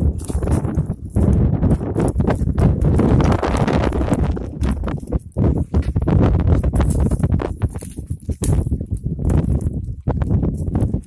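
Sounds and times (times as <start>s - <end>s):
goat hooves clicking on rock: 0.0s - 11.0s
wind rumble on microphone: 0.0s - 11.0s.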